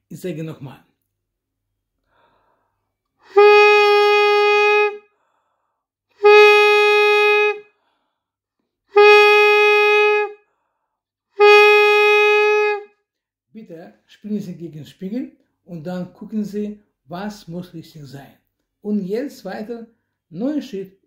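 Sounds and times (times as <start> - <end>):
saxophone mouthpiece notes: 3.2 - 5.1, 6.2 - 7.8, 8.9 - 10.4, 11.4 - 12.9.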